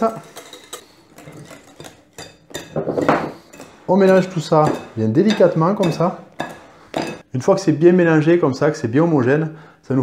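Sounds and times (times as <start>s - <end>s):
whisk scraping glass bowl: 0.0s - 7.2s.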